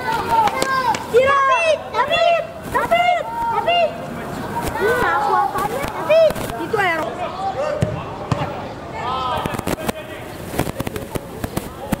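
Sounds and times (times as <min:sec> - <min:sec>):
players shouting: 0:00.0 - 0:10.3
football kick thuds: 0:07.8 - 0:08.5.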